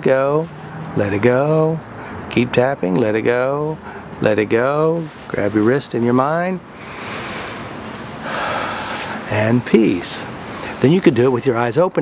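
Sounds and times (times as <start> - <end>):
man breathing deeply: 3.8 - 4.2, 6.7 - 9.3.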